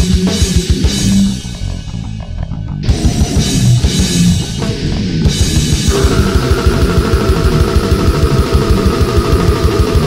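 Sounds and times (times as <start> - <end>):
distorted electric guitars: 0.0 - 10.0
fast kick drumming: 5.9 - 10.0.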